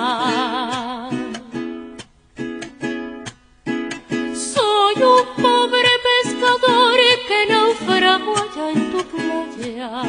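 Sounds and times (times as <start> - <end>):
soprano singing with vibrato: 0.0 - 1.6, 4.3 - 10.0.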